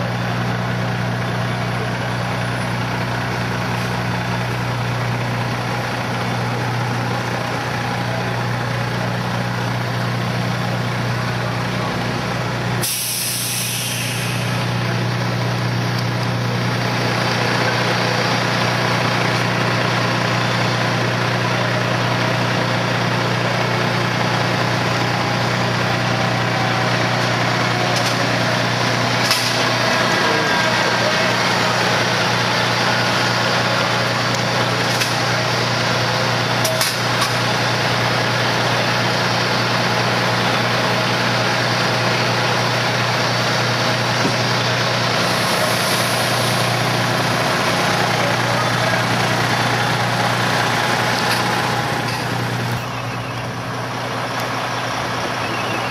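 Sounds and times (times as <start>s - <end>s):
diesel engine droning: 0.0s - 55.9s.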